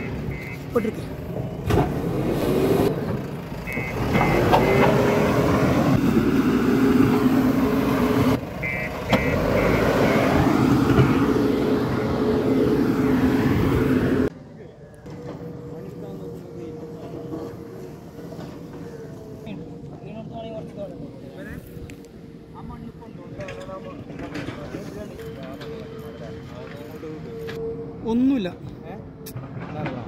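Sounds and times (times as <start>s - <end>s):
reversing alarm beeps: 0.0s - 0.7s, 3.7s - 5.5s, 8.6s - 11.3s, 25.0s - 28.0s
diesel engine working under load: 0.0s - 14.3s.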